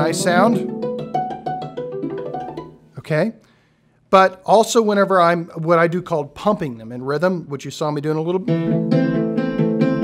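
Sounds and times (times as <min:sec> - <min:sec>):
hammered dulcimer notes: 0:00.0 - 0:02.8, 0:08.5 - 0:10.0.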